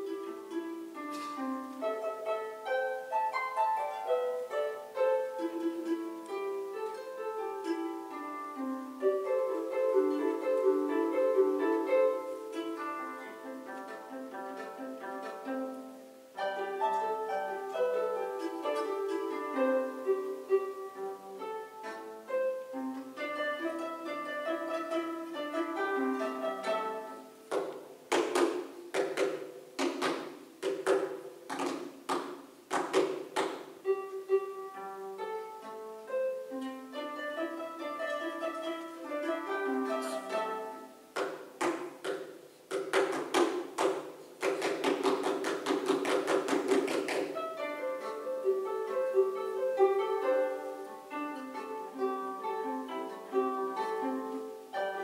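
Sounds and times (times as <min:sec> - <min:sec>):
harps playing plucked notes: 0:00.0 - 0:55.0.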